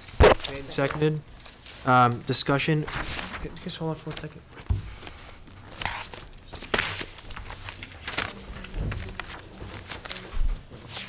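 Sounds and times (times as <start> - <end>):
paper rustling: 0.0 - 1.9, 2.8 - 11.0.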